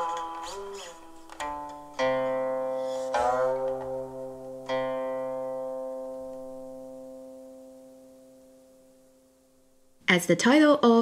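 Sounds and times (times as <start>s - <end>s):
plucked string note ringing: 0.0s - 9.6s.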